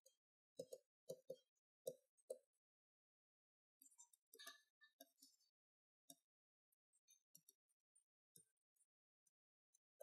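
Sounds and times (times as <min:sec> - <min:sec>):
stylus tapping on pen tablet: 0:00.0 - 0:02.6.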